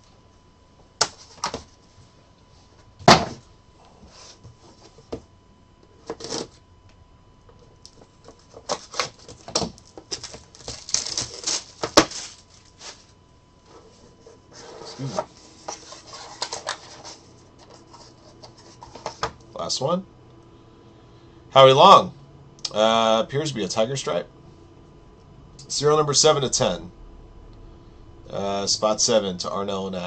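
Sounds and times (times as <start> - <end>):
plastic wrapper crinkling: 8.7 - 13.0.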